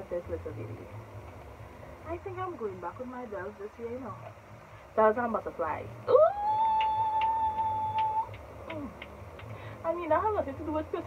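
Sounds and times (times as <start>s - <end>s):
woman singing a high ooh: 6.1s - 9.0s.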